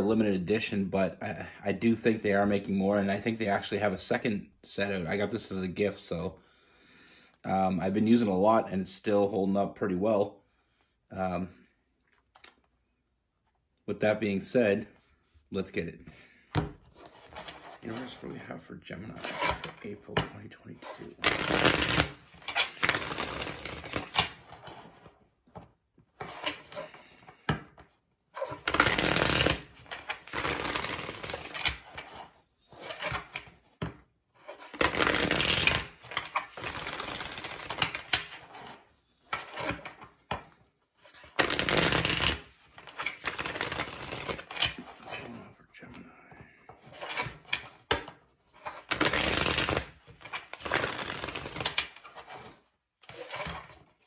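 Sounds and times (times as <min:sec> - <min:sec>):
cards being shuffled: 0:20.9 - 0:25.1, 0:26.2 - 0:33.6, 0:34.4 - 0:40.1, 0:41.0 - 0:45.3, 0:48.6 - 0:53.9
cards rustling and ticking: 0:21.0 - 0:24.9, 0:28.5 - 0:32.2, 0:34.6 - 0:38.3, 0:41.1 - 0:45.2, 0:48.8 - 0:53.6.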